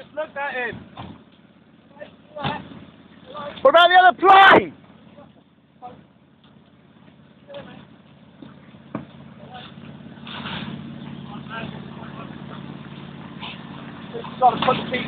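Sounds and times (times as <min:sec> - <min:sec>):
fire engine running: 0:00.0 - 0:15.0
faint distant shouts: 0:03.3 - 0:06.0.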